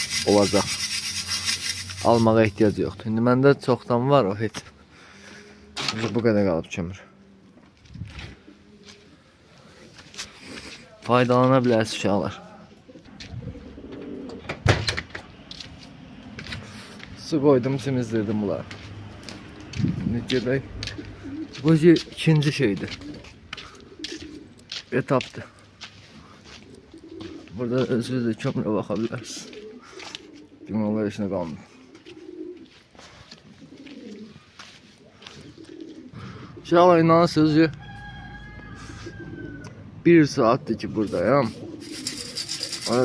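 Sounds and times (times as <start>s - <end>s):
pigeons cooing: 8.2s - 11.0s, 11.6s - 17.1s, 18.6s - 24.9s, 25.7s - 37.3s, 38.0s - 39.9s, 40.8s - 43.0s.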